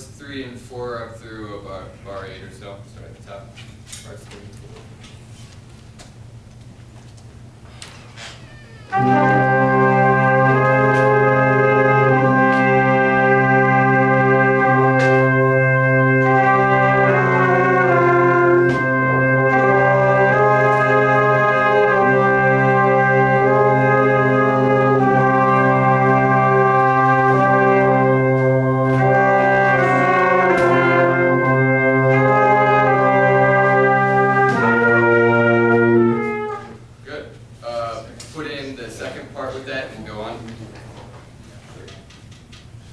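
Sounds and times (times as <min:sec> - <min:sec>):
brass ensemble playing chords: 0:08.9 - 0:37.0.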